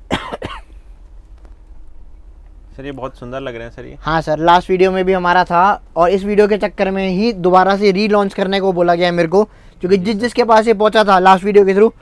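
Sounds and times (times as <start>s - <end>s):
person coughing: 0.0s - 0.8s.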